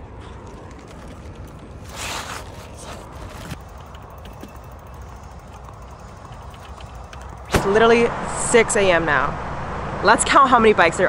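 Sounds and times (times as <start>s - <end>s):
footsteps: 0.0s - 7.7s
bike dragged along dirt path: 0.0s - 7.9s.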